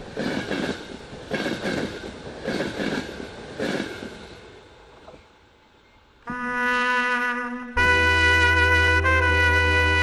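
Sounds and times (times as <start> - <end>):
train wheels clacking: 0.0 - 4.3
train rumble: 0.0 - 6.2.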